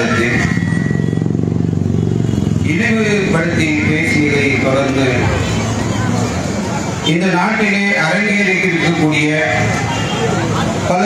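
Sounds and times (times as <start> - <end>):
vehicle engine running: 0.0 - 8.6.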